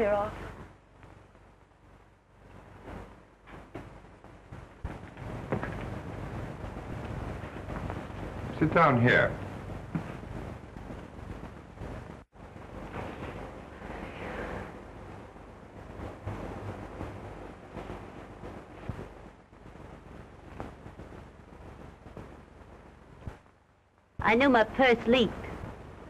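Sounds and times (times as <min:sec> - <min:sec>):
film soundtrack hiss and crackle: 0:00.0 - 0:26.0.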